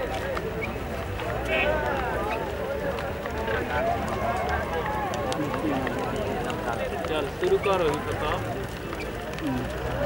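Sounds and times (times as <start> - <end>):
men talking and calling: 0.1 - 10.0.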